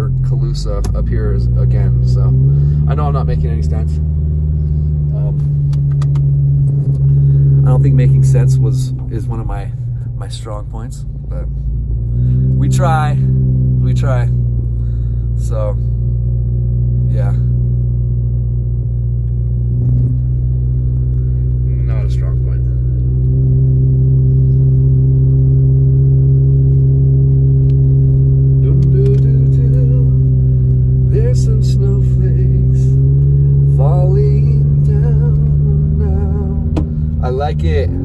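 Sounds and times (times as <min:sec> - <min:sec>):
car engine drone inside cabin: 0:00.0 - 0:38.0.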